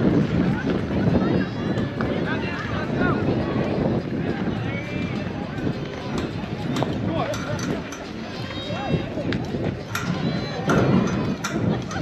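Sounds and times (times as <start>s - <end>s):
people calling out and chatting: 0.0s - 12.0s.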